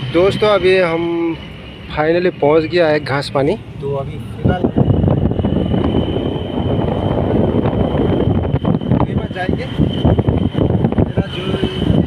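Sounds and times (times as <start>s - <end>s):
vehicle engine and tyres rumbling: 0.0s - 12.0s
wind rushing over microphone: 0.0s - 12.0s.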